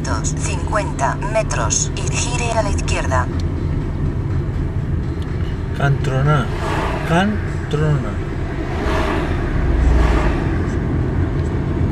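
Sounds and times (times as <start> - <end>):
car engine and tyre rumble: 0.0 - 11.9.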